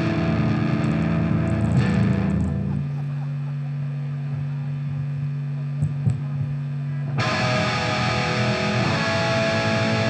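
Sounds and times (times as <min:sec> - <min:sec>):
amplifier hum: 0:00.0 - 0:10.0.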